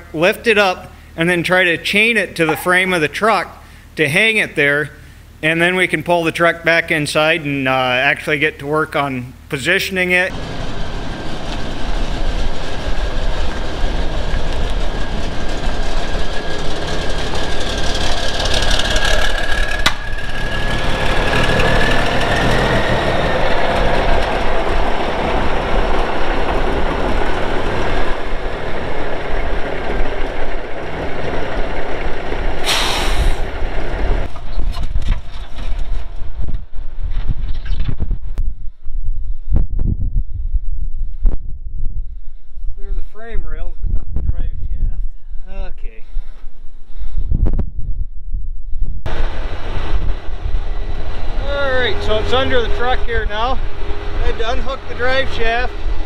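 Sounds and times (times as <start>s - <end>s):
engine whine: 10.2s - 37.2s, 49.0s - 56.0s
truck diesel engine running: 10.3s - 34.4s, 49.1s - 56.0s
hissing burst: 32.6s - 33.6s.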